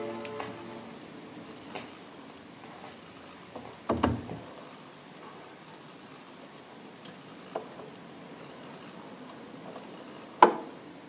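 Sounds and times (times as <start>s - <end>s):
vinyl surface hiss: 0.0s - 11.0s.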